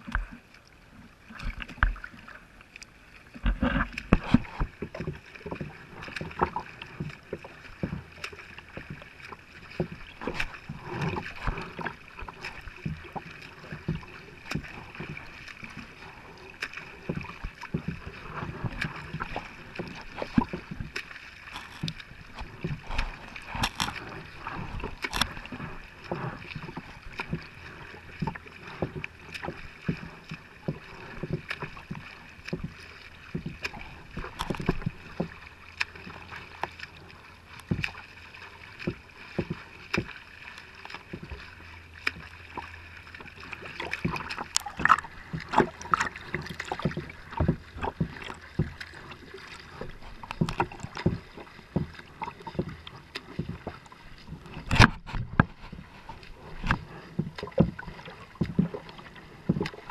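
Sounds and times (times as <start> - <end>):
water slapping and splashing: 0.0 - 59.9.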